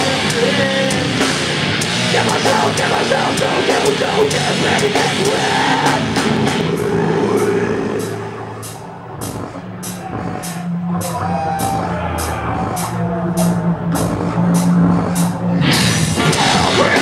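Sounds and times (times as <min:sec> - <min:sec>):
droning guitar and bass chord: 0:00.0 - 0:17.0.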